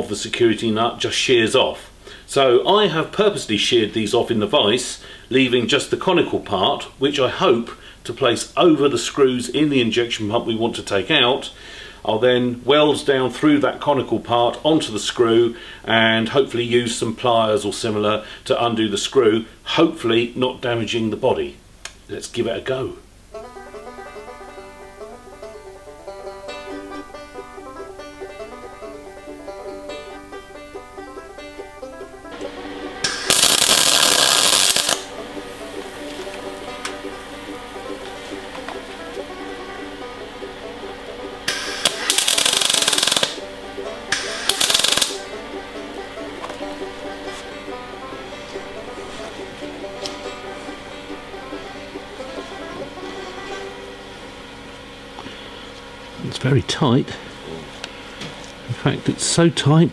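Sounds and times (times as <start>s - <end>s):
banjo music: 23.3s - 54.5s
electric welding crackling: 32.4s - 37.0s, 41.4s - 43.4s, 44.1s - 45.4s.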